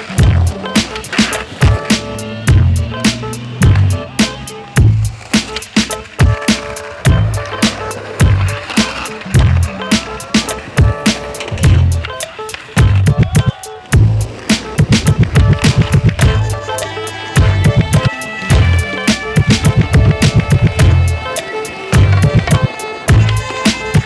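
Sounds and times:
skateboard wheels rolling: 0:00.0 - 0:24.0
soundtrack music with drum beat: 0:00.0 - 0:24.0
skateboards landing: 0:00.2 - 0:02.4, 0:03.0 - 0:24.0.

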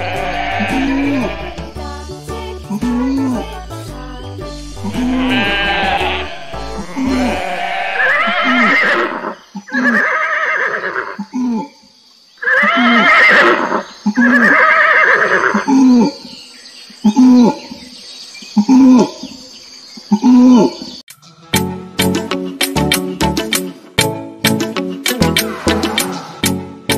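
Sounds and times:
farm animal calls: 0:00.0 - 0:01.7, 0:04.9 - 0:11.8, 0:12.4 - 0:16.3
children's music with low beat: 0:00.0 - 0:07.7, 0:21.5 - 0:26.9.

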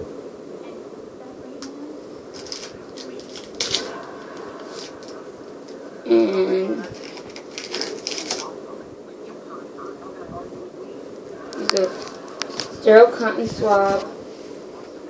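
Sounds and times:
wrappers rustling and crinkling: 0:02.3 - 0:05.2, 0:06.8 - 0:08.5.

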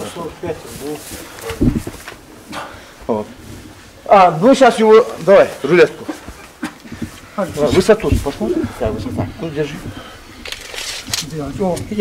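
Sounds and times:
man speaking: 0:00.0 - 0:01.8, 0:04.0 - 0:06.3, 0:07.3 - 0:10.1, 0:11.2 - 0:12.0.

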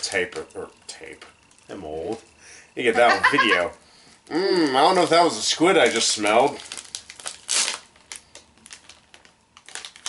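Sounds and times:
plastic snack packet crinkling: 0:00.0 - 0:10.0.

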